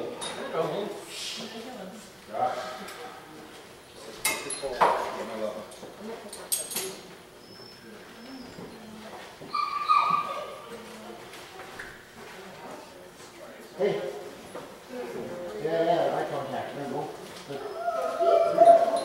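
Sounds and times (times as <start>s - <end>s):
dog whining and yipping: 9.5s - 10.7s, 17.6s - 19.0s
loud high dog whine: 9.5s - 10.8s, 17.5s - 19.0s.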